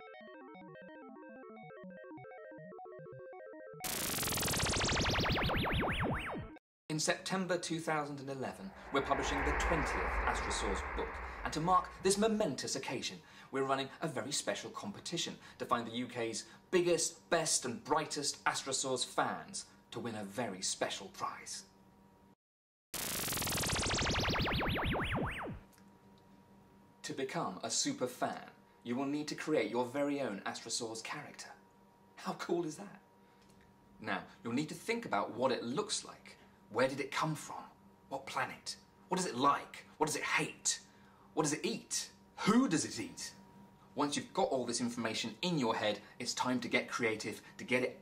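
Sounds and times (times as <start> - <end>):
electronic video game tune: 0.0 - 6.6
synthesizer tone swooping: 1.0 - 6.6, 8.6 - 12.2
sci-fi teleport sound effect: 8.6 - 12.2
low steady hum: 8.6 - 12.4.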